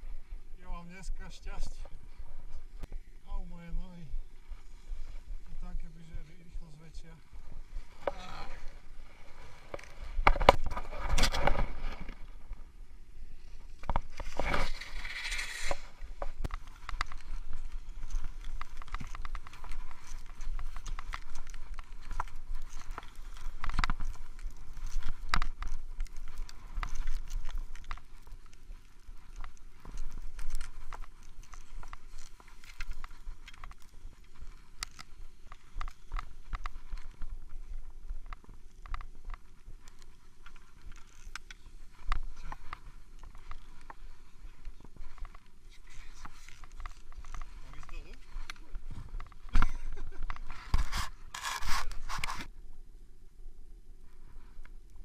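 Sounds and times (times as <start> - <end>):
skis scraping through snow: 13.4 - 40.8
jacket rubbing over camera: 49.9 - 52.5.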